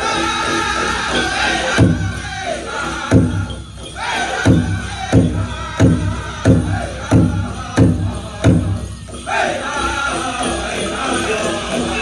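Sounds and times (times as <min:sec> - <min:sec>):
big drum beats: 0:00.0 - 0:09.3
high-pitched group singing: 0:00.0 - 0:12.0.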